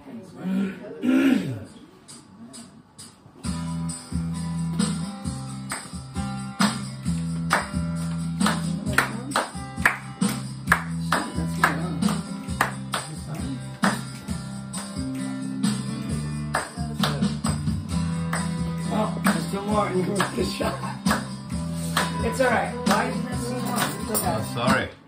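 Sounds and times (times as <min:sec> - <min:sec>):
tambourine-like beat: 0:02.1 - 0:24.9
guitar chords: 0:03.4 - 0:25.0
steady bass: 0:03.5 - 0:24.8.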